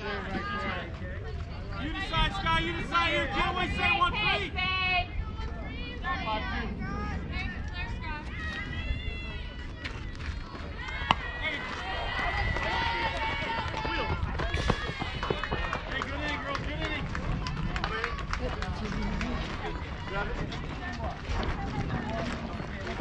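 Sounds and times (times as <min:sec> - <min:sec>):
crowd shouting and cheering: 0:01.8 - 0:21.9
bat cracking a ball: 0:10.9 - 0:13.1.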